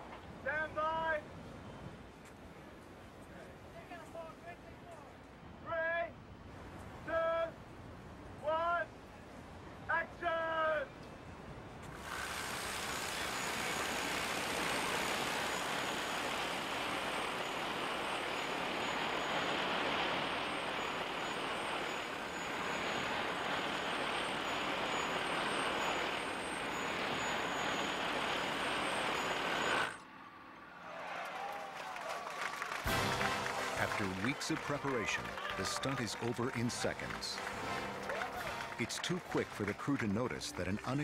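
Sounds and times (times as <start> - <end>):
wire descender whirring: 11.9 - 30.4.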